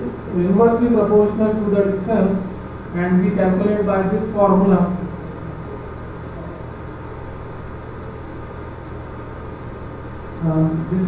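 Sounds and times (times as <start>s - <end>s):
background hiss: 0.0s - 11.0s
low electrical hum: 0.0s - 11.0s.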